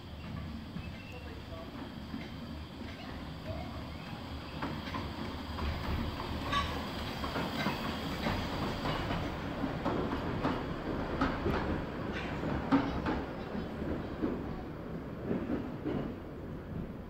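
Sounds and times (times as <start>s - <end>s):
steam train low rumble: 0.0s - 17.0s.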